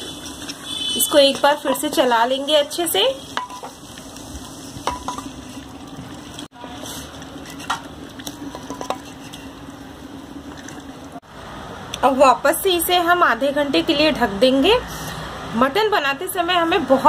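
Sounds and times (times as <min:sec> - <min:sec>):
light sizzling: 0:00.0 - 0:11.2
spatula knocking pot: 0:04.8 - 0:05.3.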